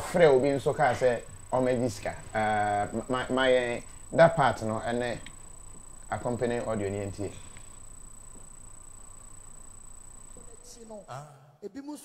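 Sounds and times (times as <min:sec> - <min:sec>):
man speaking: 0:00.0 - 0:05.3, 0:06.1 - 0:07.5, 0:10.4 - 0:12.0
high-pitched whine: 0:00.0 - 0:11.3
background hiss: 0:00.0 - 0:12.0.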